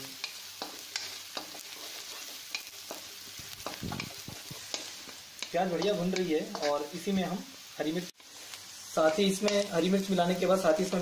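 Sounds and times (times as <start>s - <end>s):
onions sizzling in hot oil: 0.0s - 11.0s
spatula scraping a pan: 0.2s - 6.9s.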